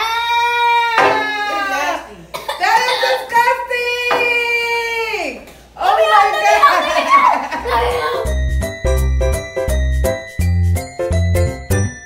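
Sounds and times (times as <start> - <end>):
people wailing and shrieking: 0.0 - 2.1, 6.0 - 8.4.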